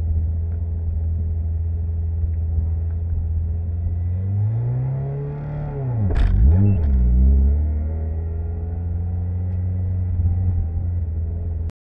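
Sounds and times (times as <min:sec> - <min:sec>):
car engine running: 0:06.0 - 0:11.7.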